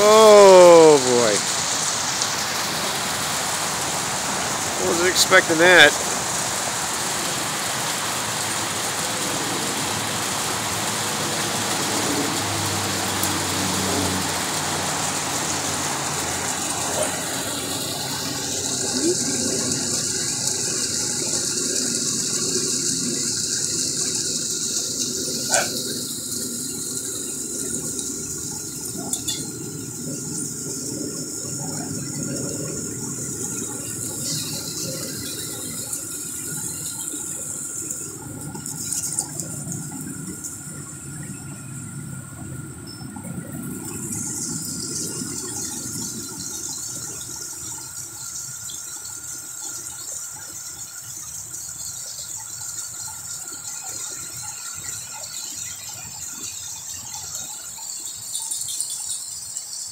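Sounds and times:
small waterfall splashing: 0.0s - 59.9s.

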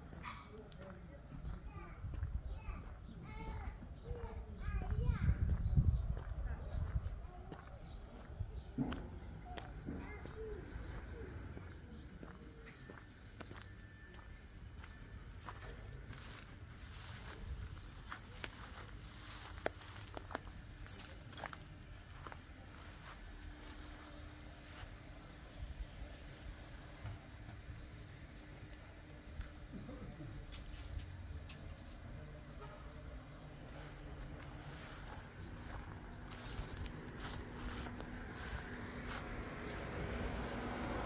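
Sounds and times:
low street rumble: 0.0s - 41.0s.

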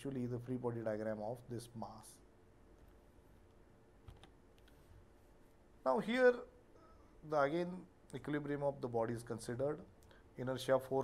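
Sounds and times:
man speaking: 0.0s - 2.3s, 5.8s - 11.0s.

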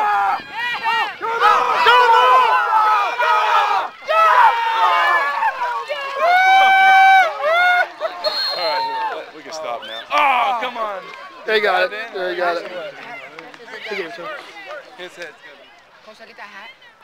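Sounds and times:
spectators yelling and screaming: 0.0s - 15.7s.

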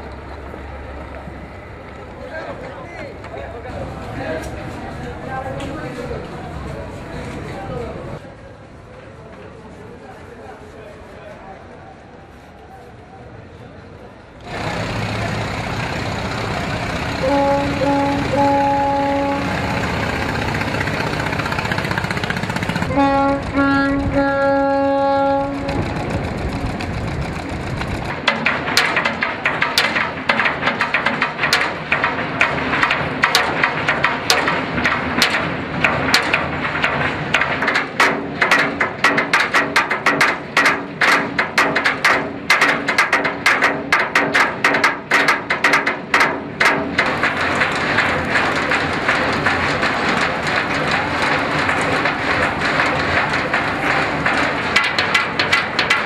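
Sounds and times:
held horn note: 17.2s - 19.9s, 22.8s - 25.9s
hammers striking steel hull: 28.1s - 56.0s.

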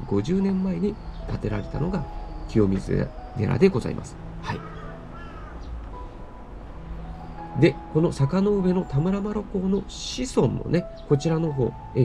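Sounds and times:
crow cawing: 4.4s - 6.2s.

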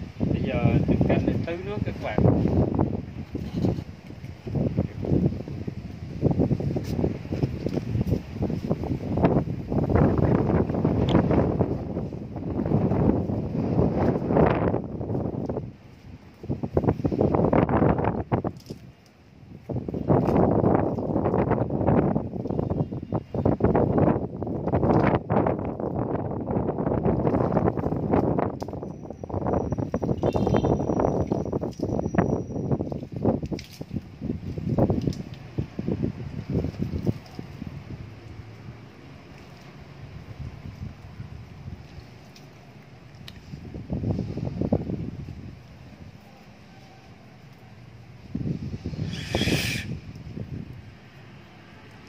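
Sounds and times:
wind buffeting microphone: 0.0s - 52.0s
water pouring onto soil: 32.9s - 43.5s.

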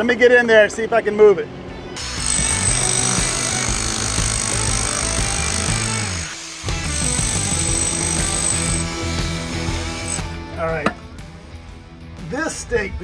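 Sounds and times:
background music: 1.6s - 13.0s
rotary hammer chiseling concrete: 2.2s - 8.9s, 10.0s - 10.3s.

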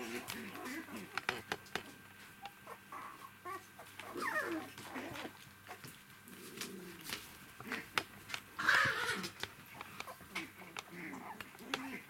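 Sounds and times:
puppies squeaking and whining: 2.4s - 5.9s, 8.6s - 12.0s.

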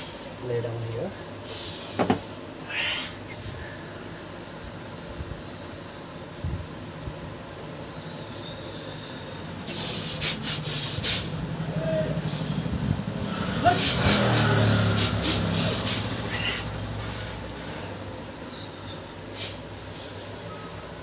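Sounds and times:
vehicle engine humming: 6.2s - 21.0s.

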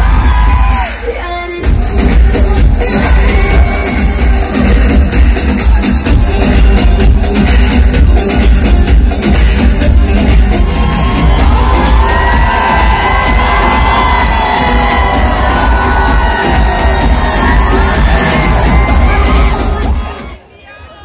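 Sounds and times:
crowd cheering and screaming: 0.0s - 4.9s, 10.1s - 21.0s
loud live concert music: 0.0s - 20.4s.

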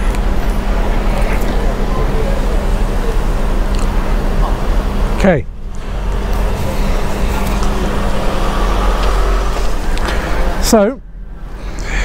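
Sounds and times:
generator humming: 0.0s - 12.0s.

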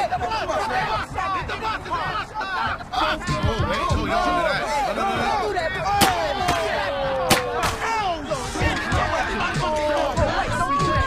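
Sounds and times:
men shouting and whooping: 0.0s - 11.0s
paintball gun shots: 7.3s - 7.9s.

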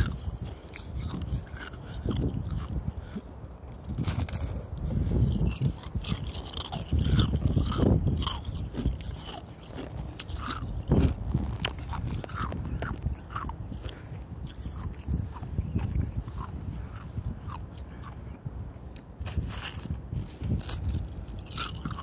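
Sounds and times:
ice being chewed: 0.0s - 22.0s.

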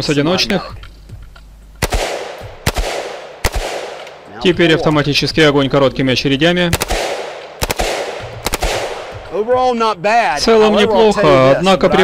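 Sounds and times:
rifle shots: 1.8s - 4.3s, 6.7s - 9.3s.

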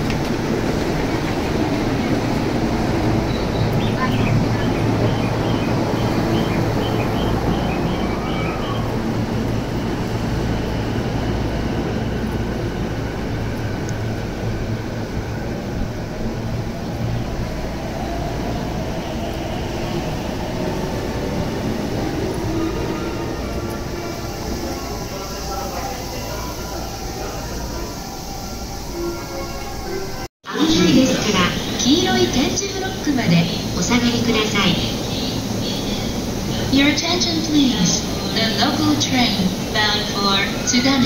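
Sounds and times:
low rumble of train: 0.0s - 41.0s
faint voices: 23.2s - 28.6s.

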